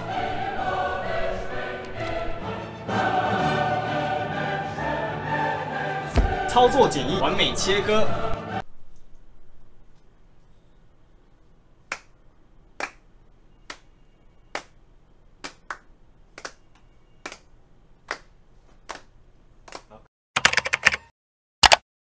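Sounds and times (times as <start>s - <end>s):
slow hand claps: 11.9s - 12.1s, 12.8s - 13.0s, 13.7s - 13.9s, 14.5s - 14.8s, 15.4s - 17.5s, 18.1s - 19.1s
keyboard typing clicks: 20.4s - 21.8s.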